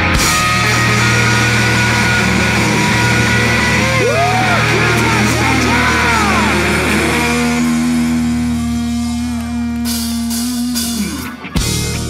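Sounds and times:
bass: 0.0s - 12.0s
drums: 0.0s - 12.0s
electric guitar: 0.0s - 12.0s.

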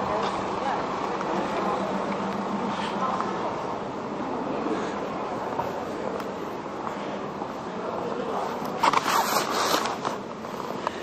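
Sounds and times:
camera handling rubbing and scraping: 8.6s - 10.2s.

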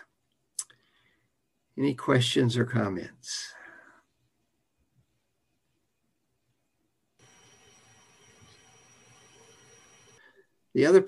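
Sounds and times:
faint steady hiss: 0.0s - 11.0s
thin high whine: 7.2s - 11.0s.

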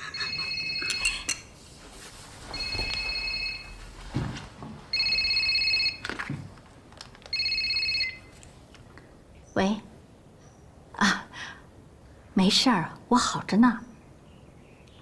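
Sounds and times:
telephone ringing electronically: 0.1s - 1.2s, 2.5s - 3.8s, 4.9s - 6.2s, 7.3s - 8.3s.

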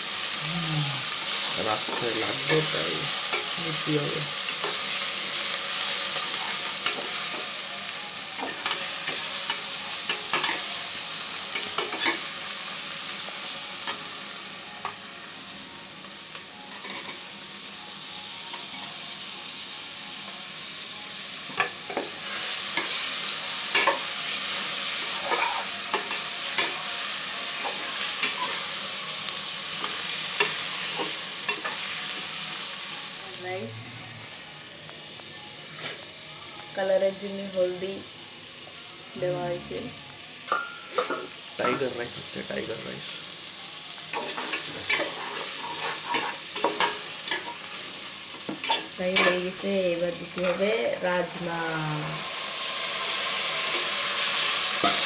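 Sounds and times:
vegetables sizzling in oil: 0.0s - 55.0s.

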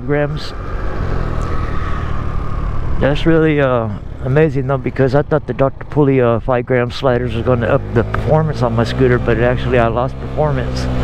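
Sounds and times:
scooter engine running: 0.5s - 6.0s, 7.2s - 11.0s.

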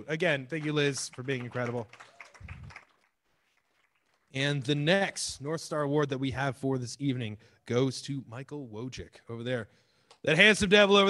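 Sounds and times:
faint audience applause: 0.4s - 4.4s.

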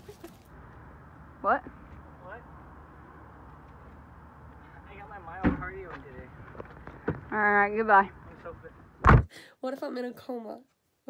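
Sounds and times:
loud thump: 5.4s - 5.8s, 9.0s - 9.3s.

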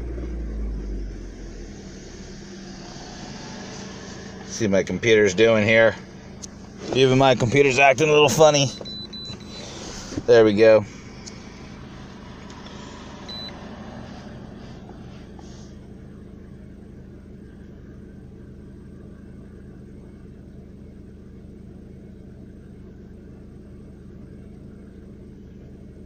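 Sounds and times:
car engine idling: 0.0s - 26.0s.

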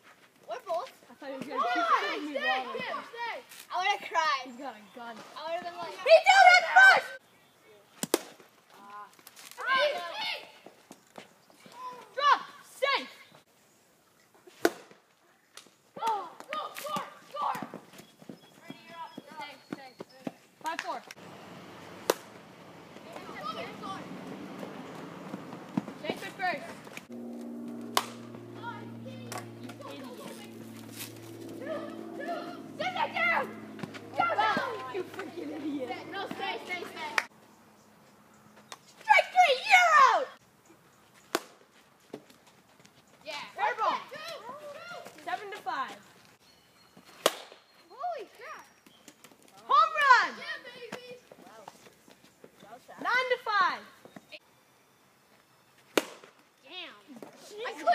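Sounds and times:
young players shouting and cheering: 0.5s - 7.3s, 9.6s - 10.7s, 11.6s - 13.3s, 16.0s - 17.8s, 22.1s - 37.3s, 38.7s - 40.4s, 43.2s - 45.9s, 49.6s - 51.6s, 57.1s - 57.9s
low steady humming chord: 27.0s - 37.2s.

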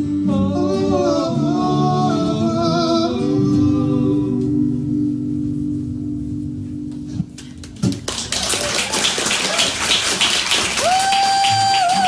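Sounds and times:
audience applause: 7.7s - 12.0s.

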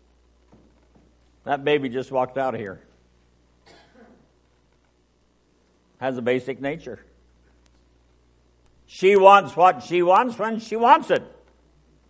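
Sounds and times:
faint breathy cough: 3.6s - 4.3s.

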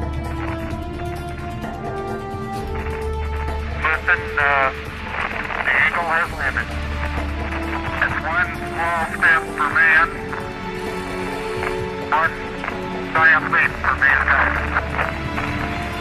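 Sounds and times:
low drone: 0.0s - 16.0s
music score with sustained notes: 0.0s - 16.0s
garbled radio voices: 2.1s - 16.0s.

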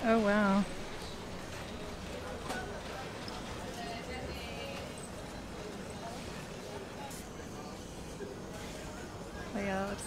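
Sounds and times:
faint background chatter: 0.0s - 10.0s.

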